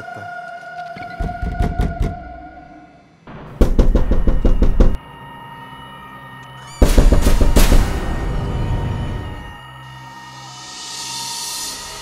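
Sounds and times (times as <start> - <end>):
fast sharp knocks: 3.6 - 5.0.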